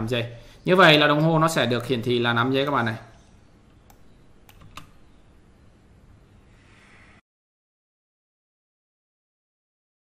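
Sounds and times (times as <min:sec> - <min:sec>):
low hiss: 0:00.0 - 0:07.2
computer clicks: 0:03.8 - 0:05.0.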